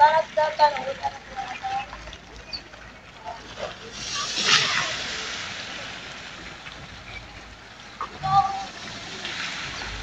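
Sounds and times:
water spraying and splashing: 0.8s - 10.0s.

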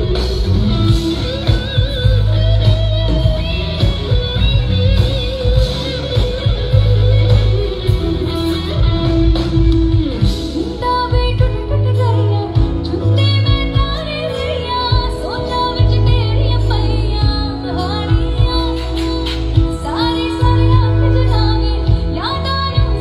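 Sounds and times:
drums: 0.0s - 23.0s
electric guitar: 0.0s - 23.0s
heavy bass: 0.0s - 23.0s
live band music: 0.0s - 23.0s
woman singing: 0.0s - 23.0s.

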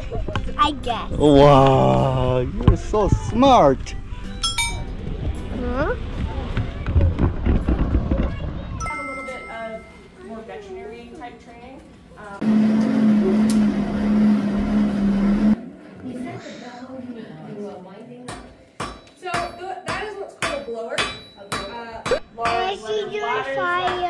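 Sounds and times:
forge blower rushing and humming: 12.4s - 15.6s
hammer striking iron on anvil: 18.3s - 22.6s.

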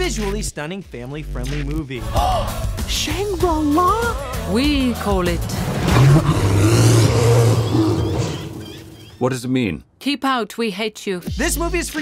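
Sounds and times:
long deep roar: 5.4s - 8.7s.

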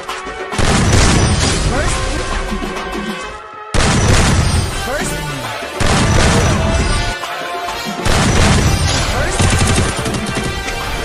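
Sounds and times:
music soundtrack: 0.0s - 11.0s
rapid gunfire: 0.6s - 2.0s, 3.8s - 4.9s, 5.8s - 7.2s, 8.0s - 11.0s.

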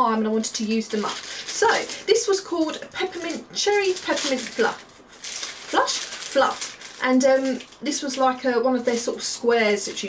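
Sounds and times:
plastic wrapper crinkling: 0.5s - 10.0s.

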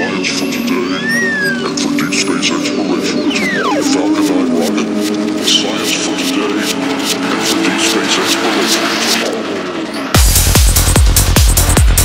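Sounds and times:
wavering synth tones: 0.0s - 8.6s.

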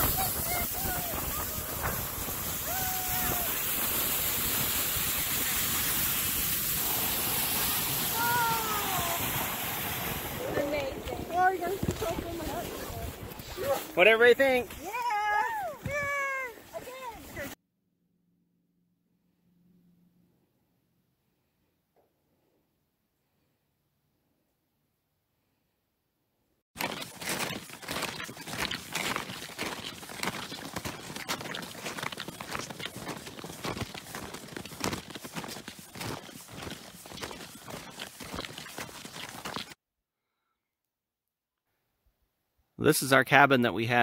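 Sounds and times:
snowshoe steps crunching on snow: 0.2s - 17.6s, 26.8s - 39.8s
woman's high-pitched wordless cries: 14.8s - 16.7s.

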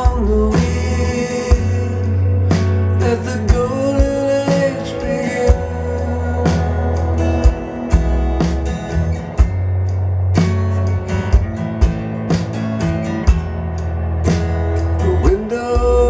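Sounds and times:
country song over loudspeakers: 0.0s - 16.0s.

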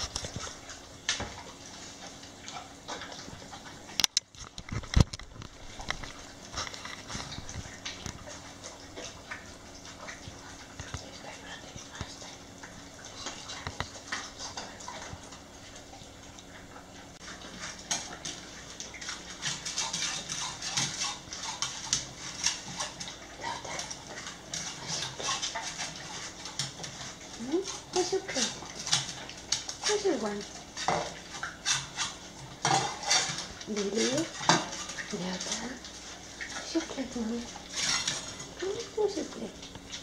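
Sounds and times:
dogs chewing and lapping from metal bowls: 0.0s - 40.0s.

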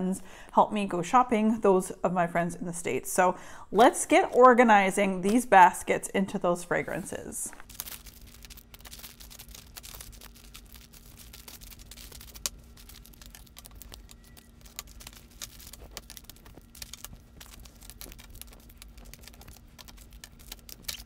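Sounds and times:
faint steady hum: 0.0s - 21.0s
plastic packaging rustling and clicking: 7.5s - 21.0s.

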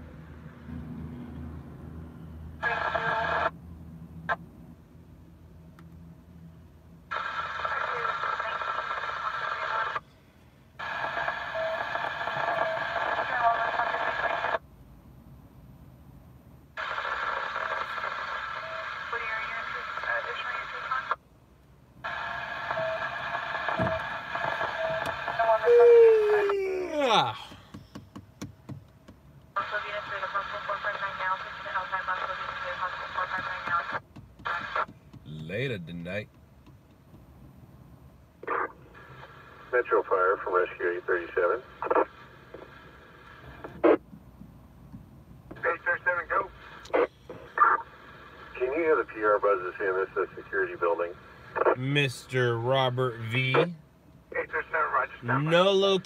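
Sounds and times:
scanner radio chatter: 2.6s - 3.5s, 7.1s - 10.0s, 10.8s - 14.6s, 16.8s - 21.2s, 22.0s - 27.6s, 29.6s - 36.2s, 38.4s - 44.0s, 45.5s - 56.0s.

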